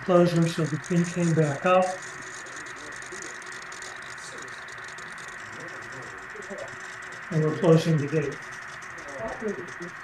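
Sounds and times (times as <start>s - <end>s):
faint distant voices: 0.1s - 10.0s.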